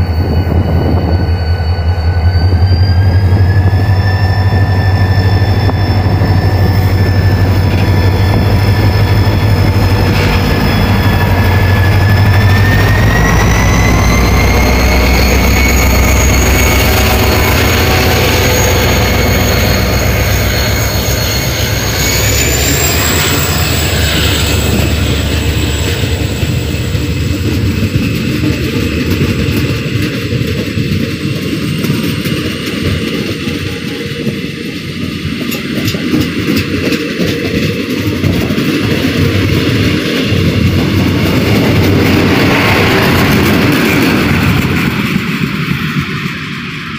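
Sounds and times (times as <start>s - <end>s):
diesel locomotive engine rumble: 0.0s - 46.9s
train wheels clicking on rails: 1.5s - 46.9s.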